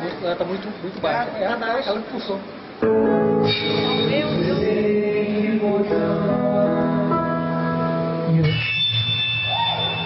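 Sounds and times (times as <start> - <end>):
live band playing: 2.7 - 10.0.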